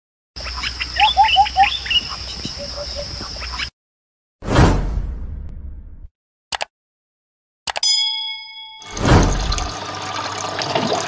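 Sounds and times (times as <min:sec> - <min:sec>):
birds chirping: 0:00.4 - 0:03.7.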